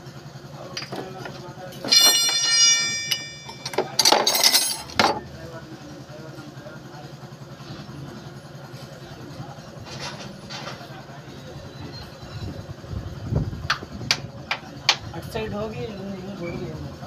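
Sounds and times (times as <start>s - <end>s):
low mechanical rumble: 0.0s - 6.7s, 7.4s - 17.0s
light metal clinks: 1.8s - 5.0s.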